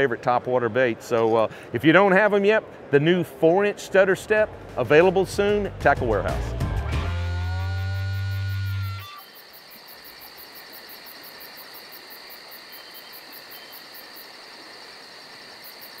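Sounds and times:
held low music note: 4.8s - 9.0s
high insect trill: 7.4s - 16.0s
crickets chirping: 7.5s - 16.0s.

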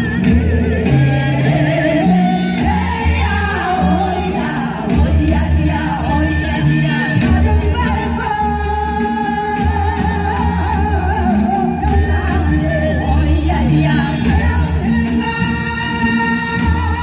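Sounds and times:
amplified song with vibrato vocals: 0.0s - 17.0s.

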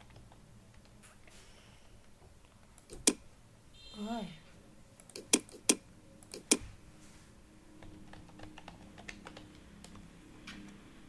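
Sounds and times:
computer keyboard typing: 5.0s - 6.6s, 7.8s - 10.1s.

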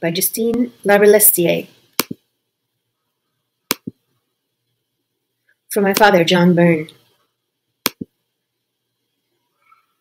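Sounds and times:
sharp clicks: 3.7s - 4.0s.

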